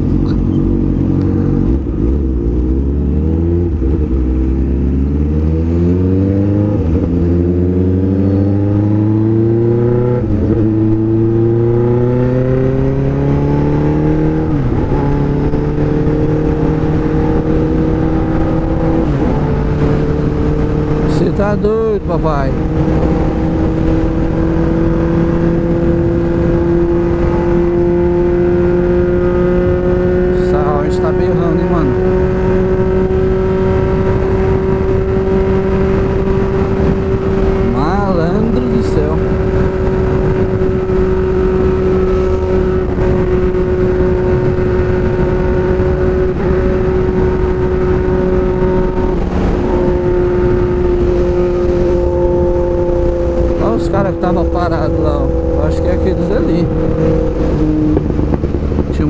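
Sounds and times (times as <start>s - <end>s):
motorcycle engine cruising: 0.0s - 59.0s
wind rushing: 31.8s - 59.0s.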